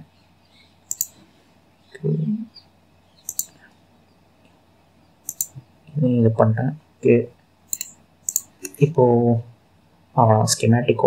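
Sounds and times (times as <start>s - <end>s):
mouse buttons clicking: 0.9s - 1.2s, 3.2s - 3.6s, 5.3s - 5.6s, 7.7s - 8.8s.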